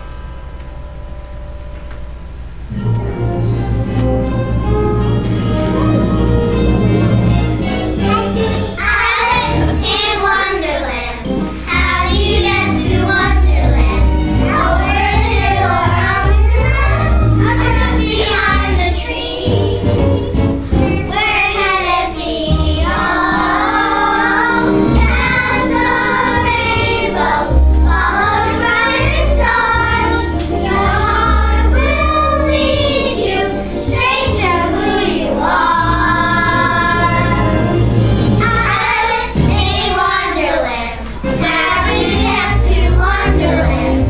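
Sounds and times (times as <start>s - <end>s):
children singing in chorus: 21.0s - 37.8s, 38.4s - 44.0s.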